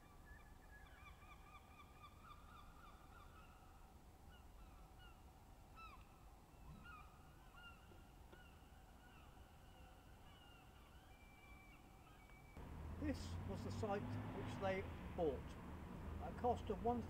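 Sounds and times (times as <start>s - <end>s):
faint bird calls: 0.0s - 12.6s.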